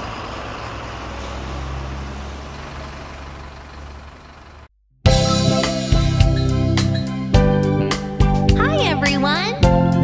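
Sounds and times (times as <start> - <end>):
road noise: 0.0 - 4.8
bus engine hum: 0.0 - 6.9.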